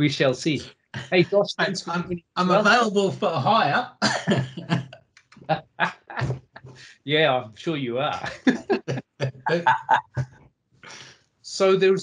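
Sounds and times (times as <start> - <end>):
men laughing: 2.6 - 4.9, 5.7 - 6.9, 7.9 - 10.2.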